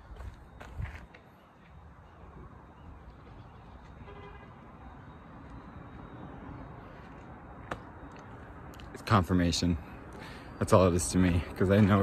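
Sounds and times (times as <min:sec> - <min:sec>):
traffic rumble: 0:00.0 - 0:12.0
wind: 0:00.0 - 0:12.0.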